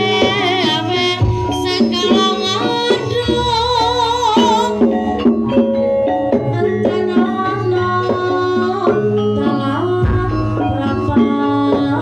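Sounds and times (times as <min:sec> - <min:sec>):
gamelan music: 0:00.0 - 0:12.0.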